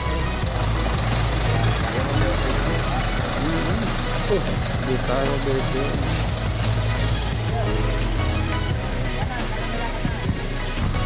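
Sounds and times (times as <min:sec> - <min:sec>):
people's voices: 0:00.0 - 0:11.0
suv engine idling: 0:00.0 - 0:11.0.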